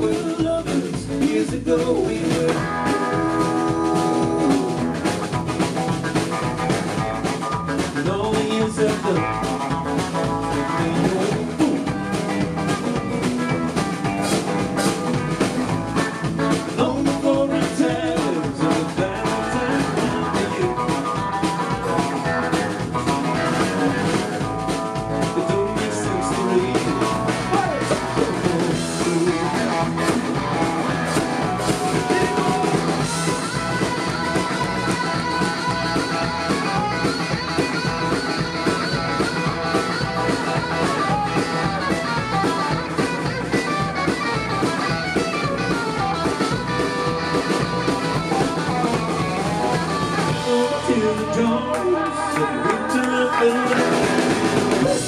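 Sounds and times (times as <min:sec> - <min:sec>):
drum kit: 0:00.0 - 0:55.0
electric guitar lead: 0:00.0 - 0:55.0.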